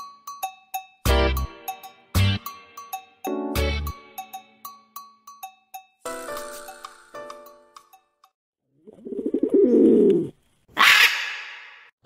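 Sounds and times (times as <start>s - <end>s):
pigeon cooing: 8.8s - 10.4s.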